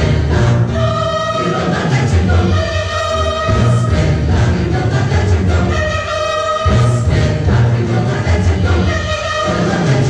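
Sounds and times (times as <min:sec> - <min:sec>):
choir singing with orchestra: 0:00.0 - 0:10.0.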